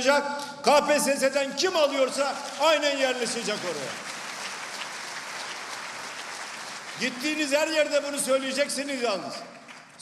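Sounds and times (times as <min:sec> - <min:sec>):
audience applauding: 0:02.0 - 0:10.0.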